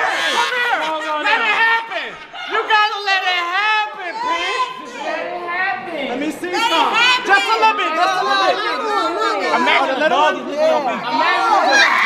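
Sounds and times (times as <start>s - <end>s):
people talking over one another: 0.0s - 12.0s.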